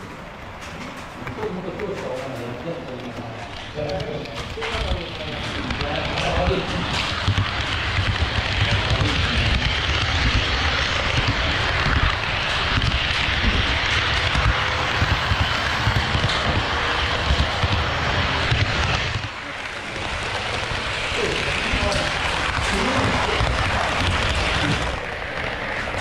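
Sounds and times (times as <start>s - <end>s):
model train rolling on rails: 0.0s - 26.0s.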